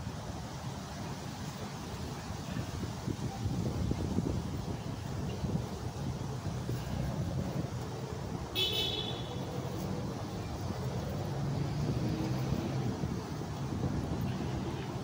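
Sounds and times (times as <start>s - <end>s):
road traffic rumble: 0.0s - 15.0s.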